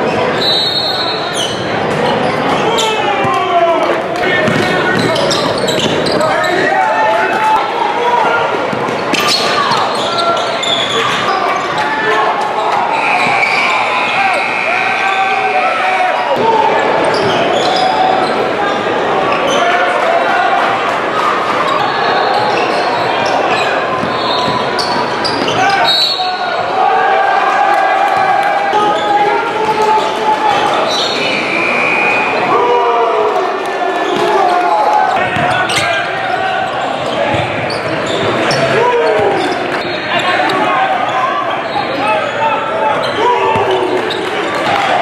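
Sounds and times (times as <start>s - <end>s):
people shouting and chattering: 0.0s - 45.0s.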